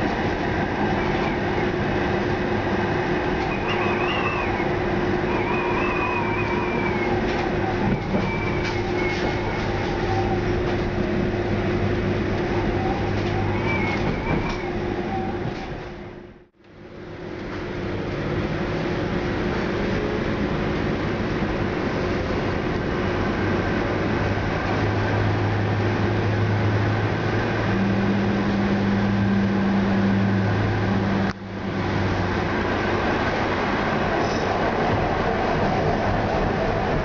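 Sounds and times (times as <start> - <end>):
tram track rumble: 0.0 - 37.0.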